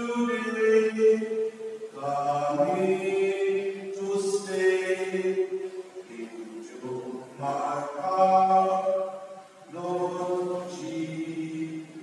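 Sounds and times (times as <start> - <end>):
man singing a chant: 0.0 - 12.0.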